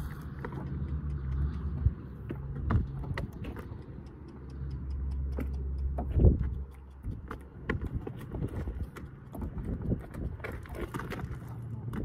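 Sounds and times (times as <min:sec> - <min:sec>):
hooves on stony ground: 0:00.0 - 0:12.0
boots on stony ground: 0:05.2 - 0:12.0.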